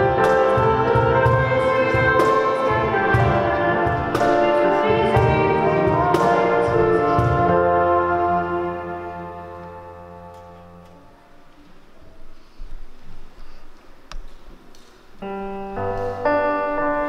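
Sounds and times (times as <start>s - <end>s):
keyboard violin and cello hymn: 0.0s - 11.2s.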